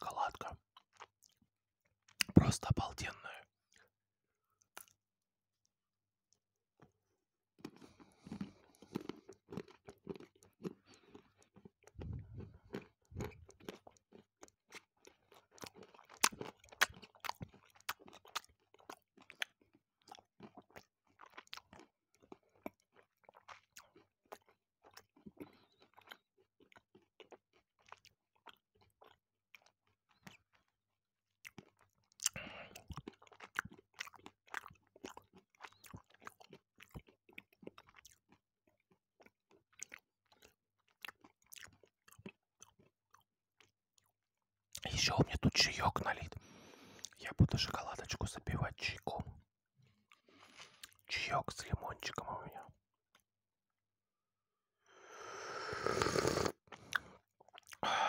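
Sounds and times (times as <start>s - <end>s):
chewing crunchy chocolate: 0.0s - 5.7s, 6.3s - 53.3s, 55.7s - 58.0s.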